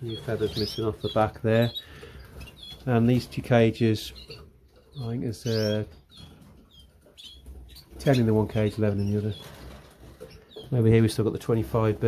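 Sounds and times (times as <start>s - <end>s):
canaries chirping: 0.0s - 12.0s.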